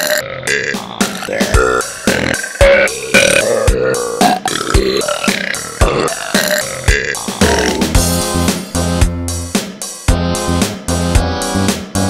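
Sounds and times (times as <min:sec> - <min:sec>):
burps in rhythm: 0:00.0 - 0:08.5
electronic dance beat: 0:00.0 - 0:09.8.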